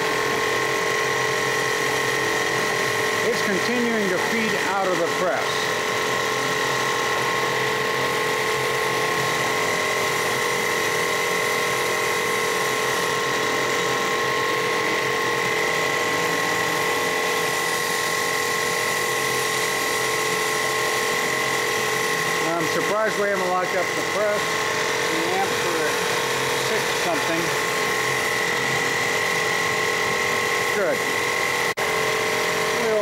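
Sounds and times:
screw press whining: 0.0 - 33.0.

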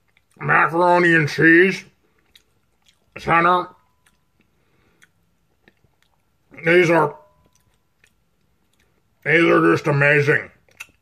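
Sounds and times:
man speaking: 0.4 - 2.0, 3.1 - 3.8, 6.5 - 7.3, 9.2 - 10.6.

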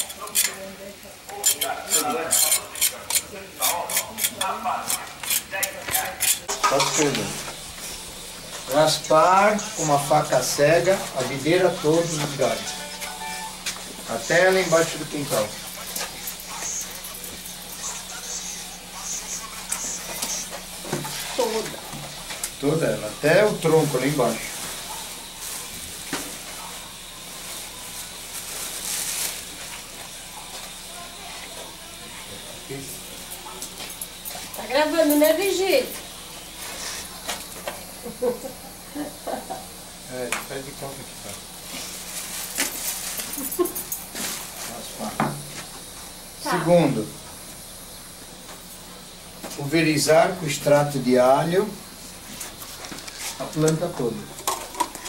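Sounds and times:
knife scraping bark: 0.0 - 0.6, 1.3 - 6.6.

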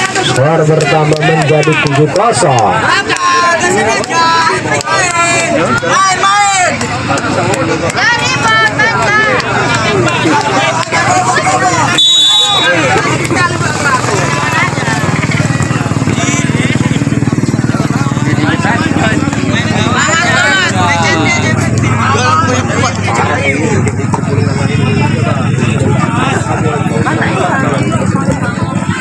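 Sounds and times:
spectators chattering: 0.0 - 29.0
high whistle blast: 12.0 - 12.8.

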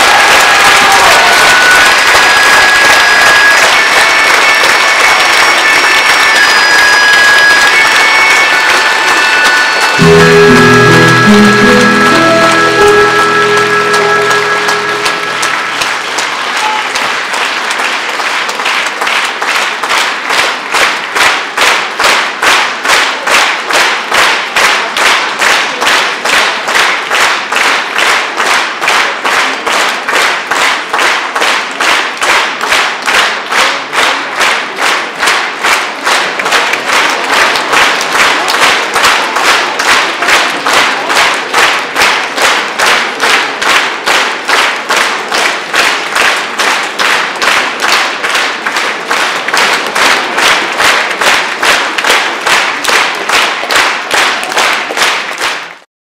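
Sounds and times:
audience clapping in unison: 0.0 - 55.9.

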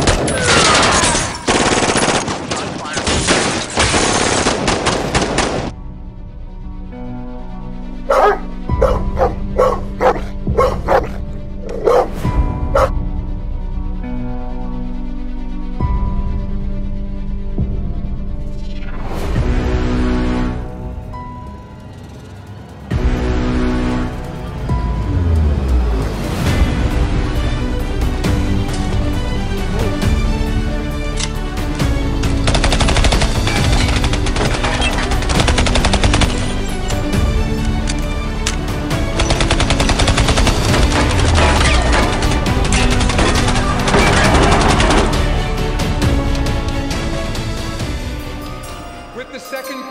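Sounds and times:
dramatic background music: 0.0 - 49.9
dog barking: 8.1 - 12.9
music with held notes: 40.7 - 49.9.

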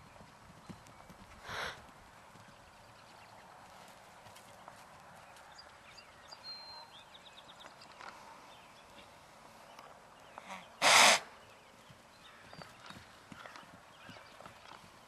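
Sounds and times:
faint hooves on turf: 0.0 - 15.0
horse snorting: 10.5 - 11.3.

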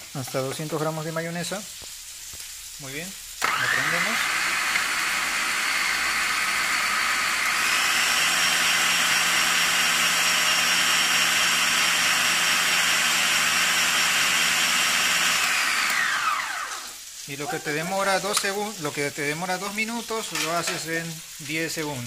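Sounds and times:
food processor motor whining: 3.4 - 17.0.

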